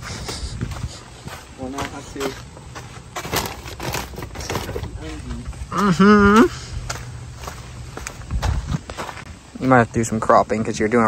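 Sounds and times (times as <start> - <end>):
clothes rustling: 1.2 - 5.4
plastic bag crinkling: 3.2 - 5.0.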